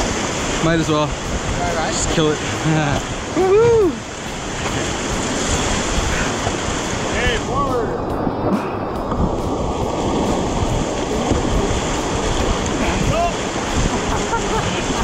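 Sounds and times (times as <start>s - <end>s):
rapids rushing and splashing: 0.0s - 15.0s
wind buffeting microphone: 0.0s - 15.0s.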